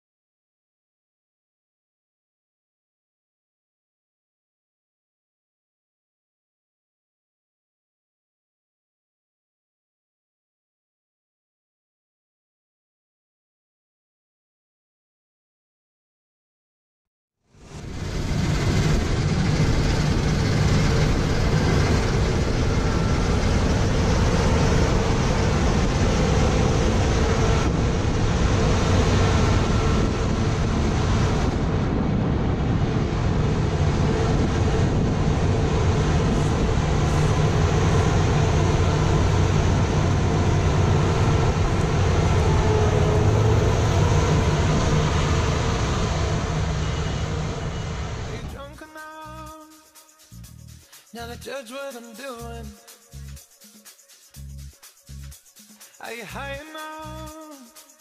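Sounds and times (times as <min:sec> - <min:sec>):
combine harvester drone: 0:17.6 - 0:48.8
faint machine whine: 0:17.6 - 0:48.8.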